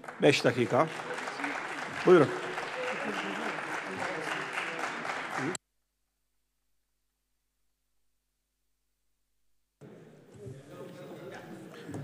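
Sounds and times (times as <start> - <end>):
many hands clapping: 0.0 - 5.6.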